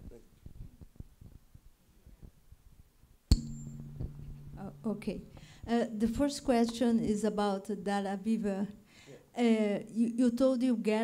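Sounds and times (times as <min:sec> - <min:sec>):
microphone rustling: 0:00.0 - 0:02.9
low electrical hum: 0:03.3 - 0:09.5.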